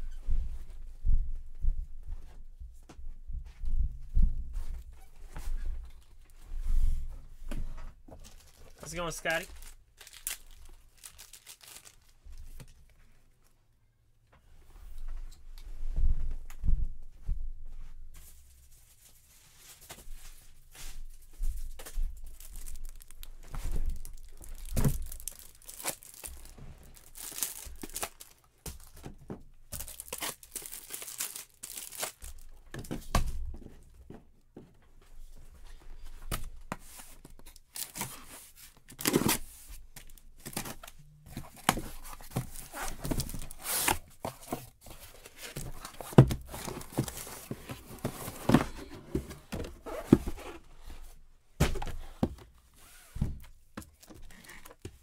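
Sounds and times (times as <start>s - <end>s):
cardboard and tape ripping: 22.4s - 28.4s, 29.7s - 32.4s, 41.6s - 44.6s.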